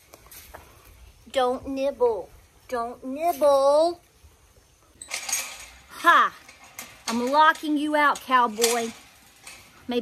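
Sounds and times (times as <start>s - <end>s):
chain-link panel rattling: 5.0s - 10.0s.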